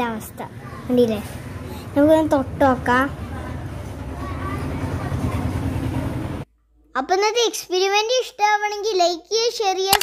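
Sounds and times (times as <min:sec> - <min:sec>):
faint voices: 0:02.8 - 0:06.4.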